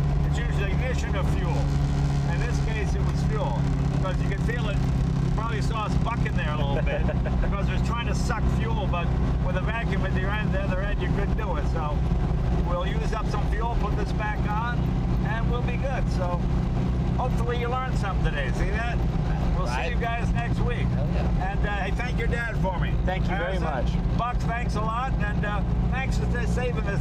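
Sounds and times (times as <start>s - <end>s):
car engine droning: 0.0s - 27.0s
voices and laughter: 6.5s - 7.9s.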